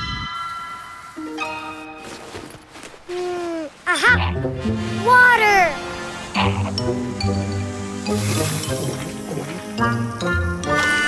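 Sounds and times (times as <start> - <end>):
cartoon background music: 3.9 - 11.0.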